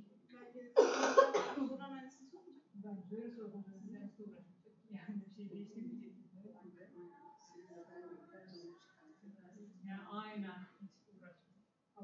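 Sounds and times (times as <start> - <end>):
faint talking: 0.0 - 11.4
person coughing: 0.8 - 1.7.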